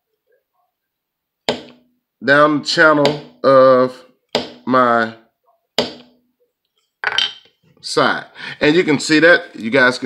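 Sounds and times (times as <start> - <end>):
mallet tapping leather stamp: 4.3 - 4.6.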